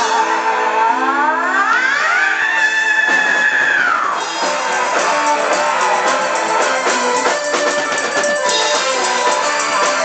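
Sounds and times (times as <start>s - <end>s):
guitar melody: 4.2s - 10.0s
steady drum beat: 4.2s - 10.0s.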